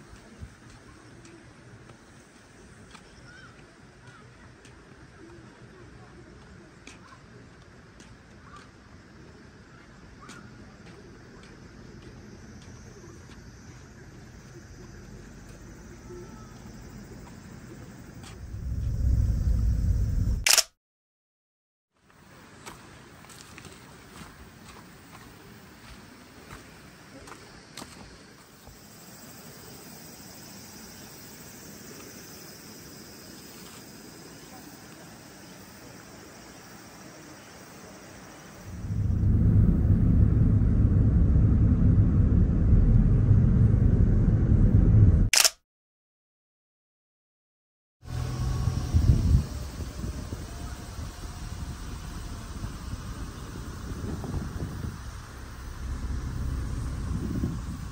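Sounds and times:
low rumble: 18.0s - 20.6s, 38.7s - 45.3s, 48.1s - 57.9s
sharp click: 20.4s - 20.7s, 45.3s - 45.6s
faint steady hiss: 22.0s - 40.2s.

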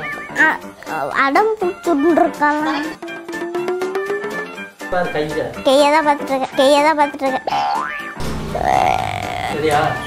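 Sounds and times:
wobbling boing tones: 7.8s - 9.6s.

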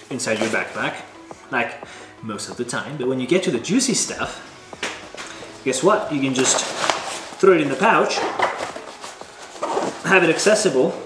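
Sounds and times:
fabric pouch rustling: 4.9s - 10.6s.

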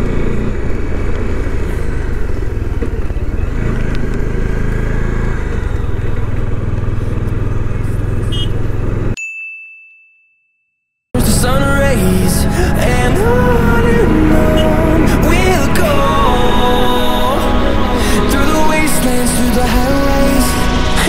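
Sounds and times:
motorcycle engine cruising: 0.0s - 9.2s, 11.2s - 21.0s
bell-like ding: 9.2s - 10.9s.

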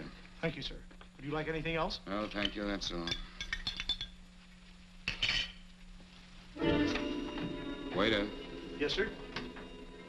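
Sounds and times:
film score music: 6.6s - 10.0s.

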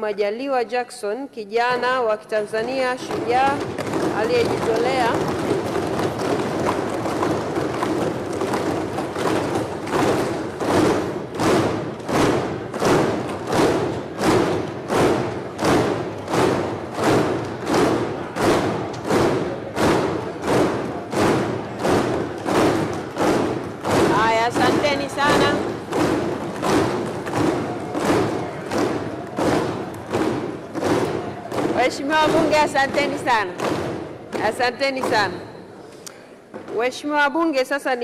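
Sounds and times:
people thumping desks and clapping: 1.8s - 37.0s.

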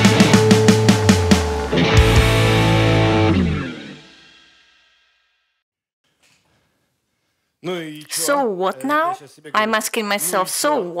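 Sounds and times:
guitar chord ringing: 0.0s - 4.2s
distorted electric guitar riff: 0.0s - 4.9s.

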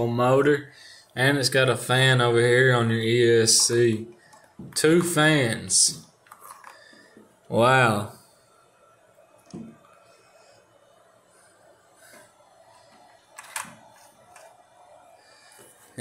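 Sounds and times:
faint handling noises: 3.4s - 7.5s.

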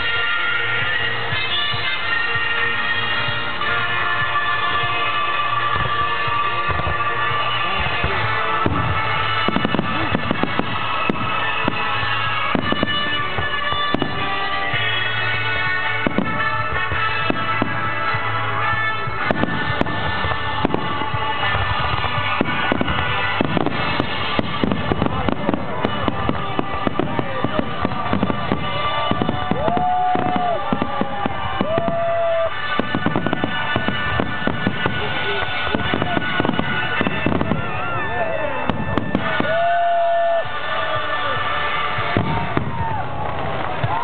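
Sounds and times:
fireworks bangs and crackles: 0.0s - 44.0s
music playing: 0.0s - 44.0s
firework whistles: 16.0s - 44.0s.

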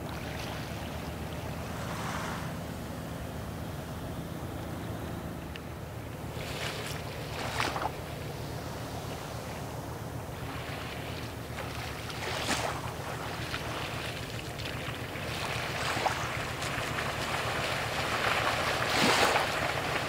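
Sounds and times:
wind and water rushing: 0.0s - 4.8s, 5.8s - 20.0s
ship engine rumble: 0.0s - 20.0s.

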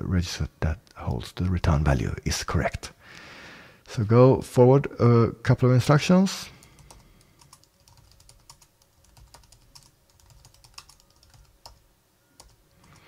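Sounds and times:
faint keyboard typing: 6.5s - 13.0s.

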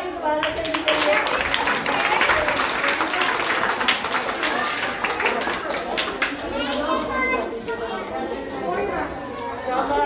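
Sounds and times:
children clapping: 0.3s - 6.9s.

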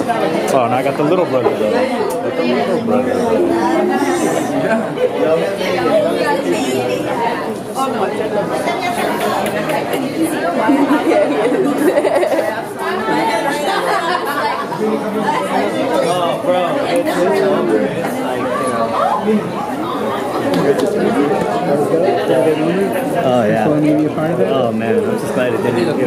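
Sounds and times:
many people chatting: 0.0s - 26.0s.

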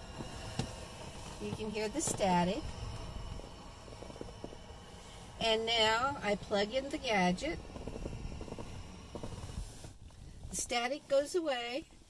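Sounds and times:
low rumble: 0.0s - 10.7s
radio static hissing: 0.0s - 11.9s.

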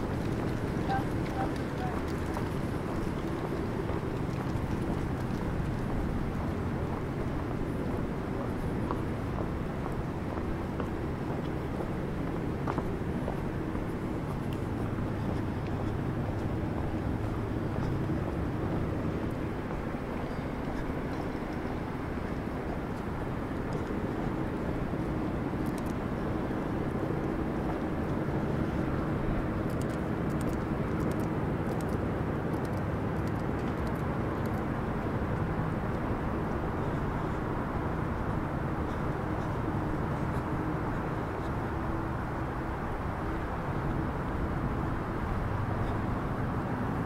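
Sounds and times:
distant traffic hum: 0.0s - 47.0s
faint steady drone: 0.0s - 47.0s.

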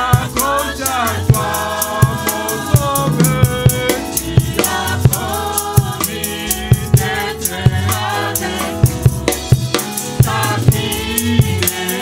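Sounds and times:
man singing into microphone: 0.0s - 4.2s
drums and percussion: 0.0s - 12.0s.

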